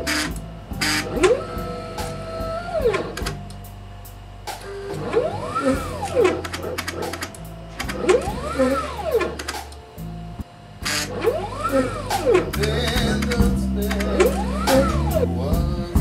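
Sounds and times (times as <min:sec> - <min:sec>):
steady low hum: 0:00.0 - 0:16.0
stepper motor whine: 0:00.0 - 0:16.0.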